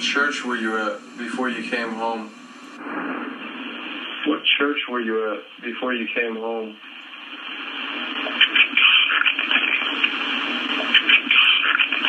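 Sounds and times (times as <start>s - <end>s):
playback hiss and crackling: 0.0s - 12.0s.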